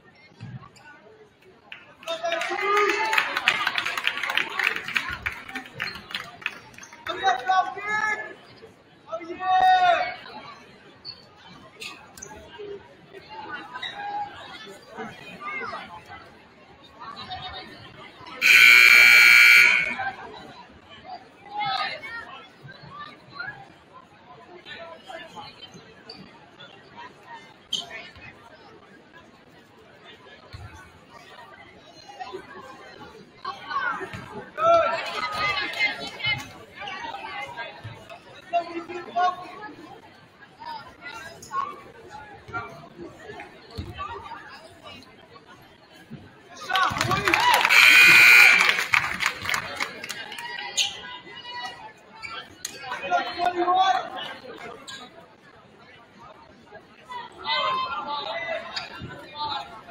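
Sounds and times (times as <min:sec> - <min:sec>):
spectators chattering: 0:00.0 - 0:59.9
voices calling out: 0:18.4 - 0:20.2, 0:47.2 - 0:49.2.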